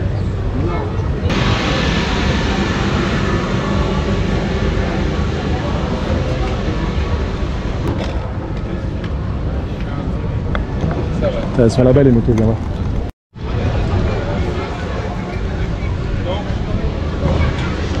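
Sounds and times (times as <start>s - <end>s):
people talking: 0.0s - 9.0s, 11.2s - 12.6s, 13.5s - 18.0s.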